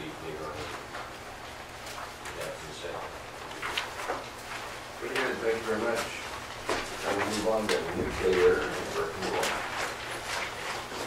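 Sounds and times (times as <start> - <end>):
paper rustling: 1.8 - 11.0
low murmured speech: 7.0 - 9.8.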